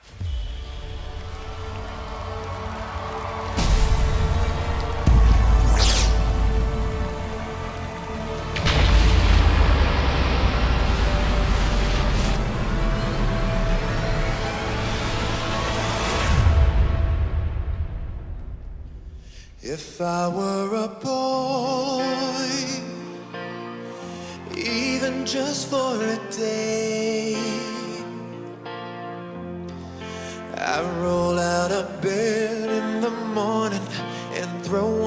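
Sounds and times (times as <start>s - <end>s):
deep hit: 0.0s - 14.4s
rising whoosh: 0.0s - 19.3s
low rumble: 0.0s - 19.7s
dramatic intro music: 0.0s - 34.6s.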